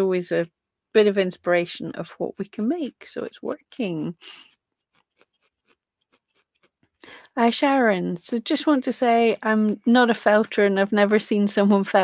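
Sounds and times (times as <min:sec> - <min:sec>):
felting needle ticks: 0:01.5 - 0:07.9.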